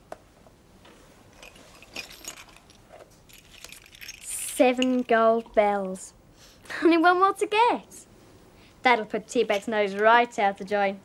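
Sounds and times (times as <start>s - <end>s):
small metal bells clinking: 1.3s - 5.2s
girl speaking: 4.2s - 8.1s, 8.8s - 11.0s.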